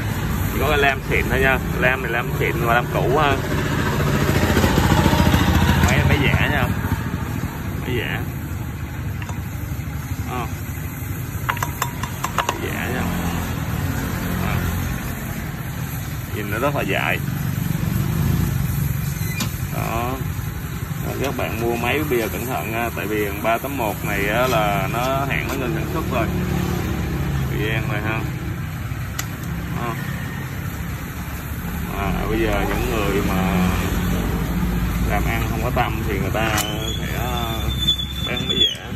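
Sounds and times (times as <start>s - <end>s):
engine idling: 0.0s - 38.9s.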